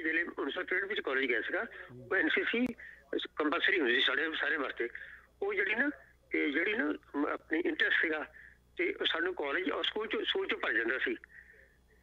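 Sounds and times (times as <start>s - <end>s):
person talking over telephone: 0.0s - 11.3s.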